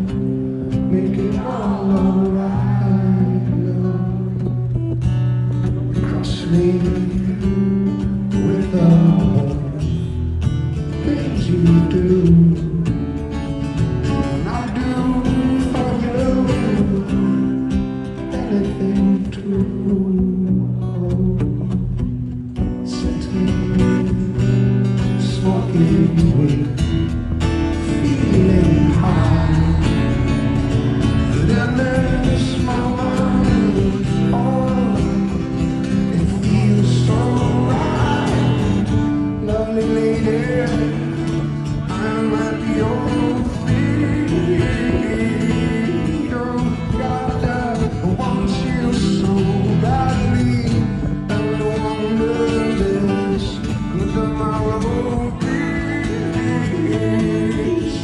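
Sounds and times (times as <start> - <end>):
person singing: 0.0 - 4.7, 27.7 - 30.6, 31.2 - 58.0
acoustic guitar: 0.0 - 58.0.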